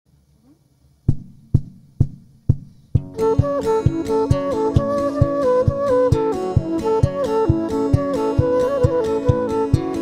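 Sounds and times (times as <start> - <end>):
low knocks counting in: 1.1 - 4.0.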